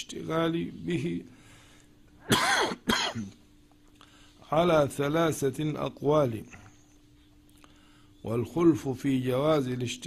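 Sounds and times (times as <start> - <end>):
man clearing his throat: 2.2 - 3.4.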